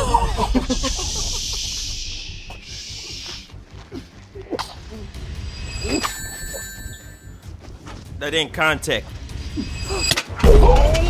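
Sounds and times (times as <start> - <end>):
metallic bell-like ring: 5.4 - 7.4.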